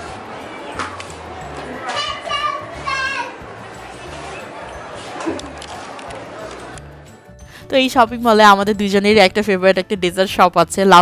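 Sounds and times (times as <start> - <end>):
background music: 0.0 - 11.0
children shouting excitedly: 0.4 - 3.6.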